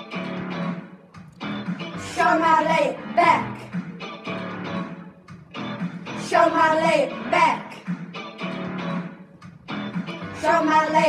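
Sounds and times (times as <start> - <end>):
bass line: 0.0 - 11.0
plucked guitar: 0.0 - 11.0.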